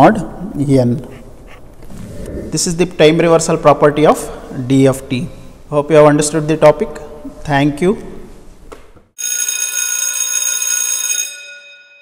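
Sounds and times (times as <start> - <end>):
bright bell-like ringing: 9.2 - 12.0.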